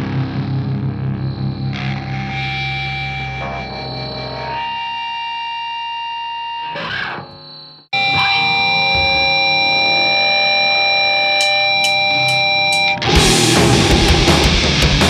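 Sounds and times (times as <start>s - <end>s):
distorted electric guitar chords: 0.0s - 15.0s.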